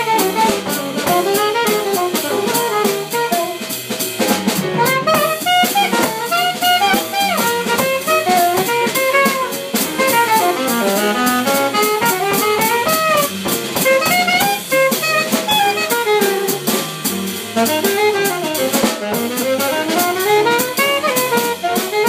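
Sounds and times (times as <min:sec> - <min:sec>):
drum kit with cymbals: 0:00.0 - 0:22.0
saxophone solo: 0:00.0 - 0:22.0.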